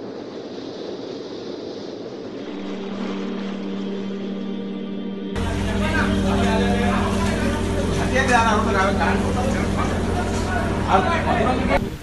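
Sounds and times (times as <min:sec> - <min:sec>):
steady rushing noise: 0:00.0 - 0:12.0
low steady hum: 0:00.7 - 0:12.0.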